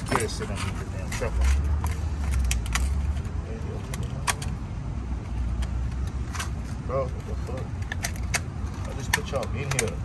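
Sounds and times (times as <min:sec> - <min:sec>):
metal bolts clinking: 0:00.0 - 0:03.1.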